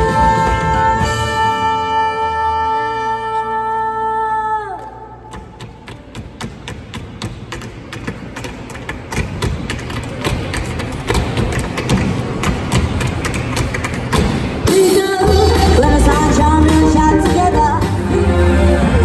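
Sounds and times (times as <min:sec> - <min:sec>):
full band music: 0:00.0 - 0:03.6, 0:14.6 - 0:19.0.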